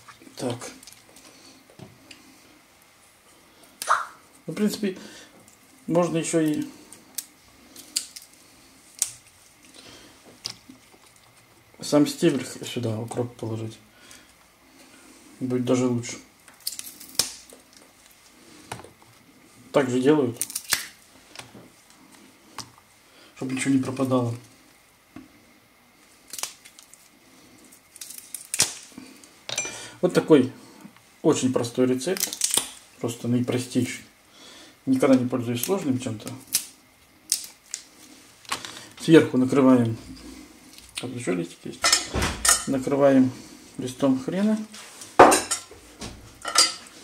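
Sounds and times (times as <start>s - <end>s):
crackling rustle of stalk: 0.0s - 34.2s, 34.8s - 41.8s
kitchenware clinking: 41.8s - 42.8s, 45.2s - 45.7s, 46.4s - 46.9s.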